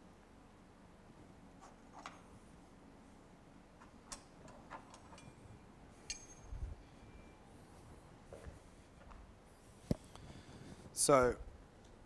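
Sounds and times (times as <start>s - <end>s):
metal tuning forks clinking: 5.2s - 7.3s
tuning forks ringing high tone: 5.2s - 8.2s.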